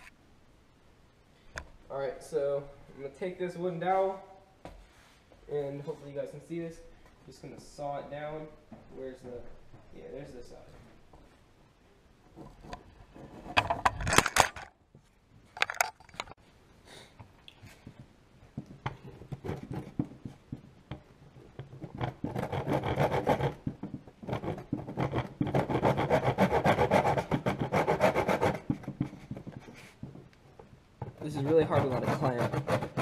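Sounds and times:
handsaw cutting wood: 22.3 - 23.6, 24.4 - 28.7, 31.3 - 33.0.

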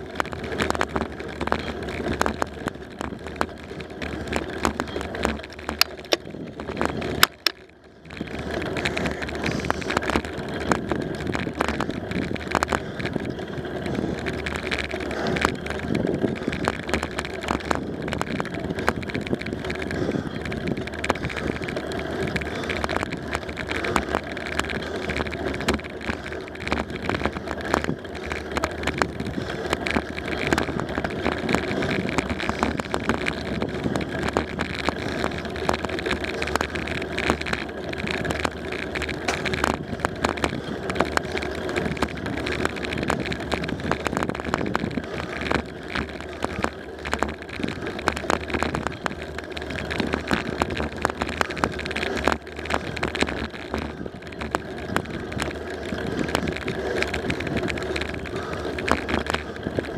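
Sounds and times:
bicycle tyres rumbling on asphalt: 0.0 - 59.9
small rattles and clicks: 0.0 - 59.9.

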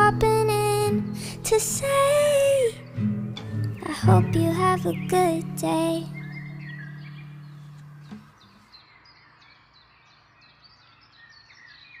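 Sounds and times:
sung song closing chord: 0.0 - 8.2
faint bird chirps: 0.0 - 12.0.

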